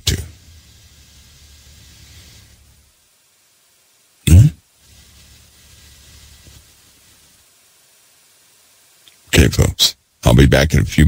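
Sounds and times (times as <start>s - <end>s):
faint low hum: 0.0s - 11.0s
man's voice: 9.4s - 11.0s.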